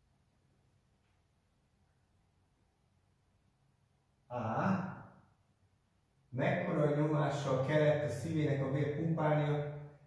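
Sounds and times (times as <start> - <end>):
man saying a drawn-out vowel: 4.3 - 5.0.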